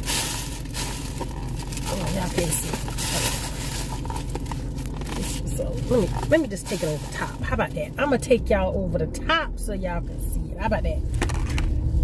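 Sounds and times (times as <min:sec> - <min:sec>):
plastic bag rustling and crinkling: 0:00.0 - 0:08.0.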